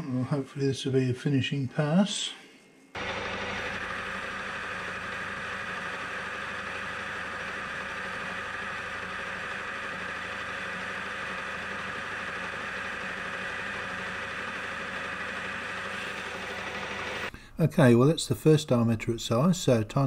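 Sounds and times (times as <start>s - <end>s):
metal lathe humming: 3.0s - 17.3s.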